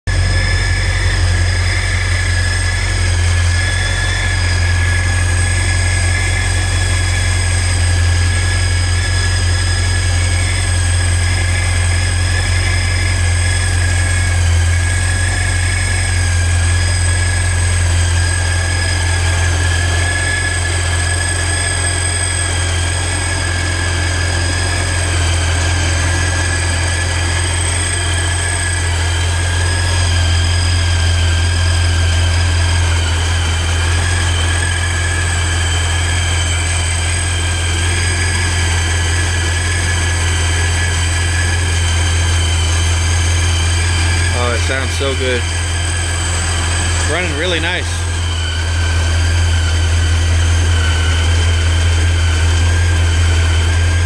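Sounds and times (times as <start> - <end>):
car engine idling: 0.0 - 54.0
supercharger whine: 0.0 - 54.0.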